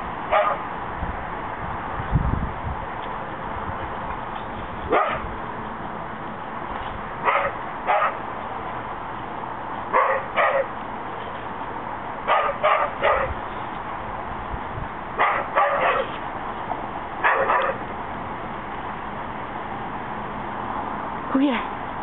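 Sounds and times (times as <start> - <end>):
dog barking: 0.3 - 0.6, 4.9 - 5.3, 7.2 - 8.2, 9.9 - 10.7, 12.3 - 13.4, 15.2 - 16.2, 17.2 - 17.8.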